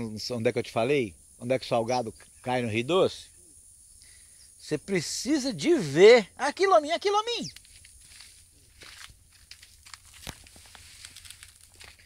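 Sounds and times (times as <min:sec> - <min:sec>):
rustling of dry leaves: 0:07.5 - 0:12.0.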